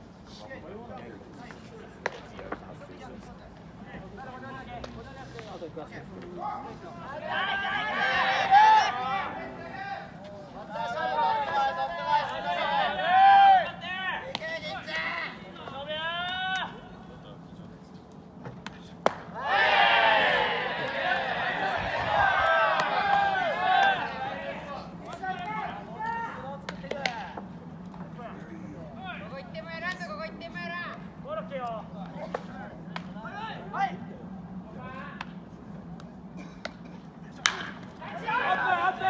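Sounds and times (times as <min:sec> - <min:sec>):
bat cracking against ball: 0:02.0 - 0:02.6, 0:18.5 - 0:19.4, 0:36.6 - 0:38.0
crowd shouting and cheering: 0:07.2 - 0:10.1, 0:10.7 - 0:14.2, 0:19.3 - 0:26.4, 0:37.9 - 0:39.0
bat hitting baseball: 0:18.6 - 0:19.3, 0:37.4 - 0:37.9
voices calling out: 0:19.1 - 0:27.4, 0:37.4 - 0:39.0.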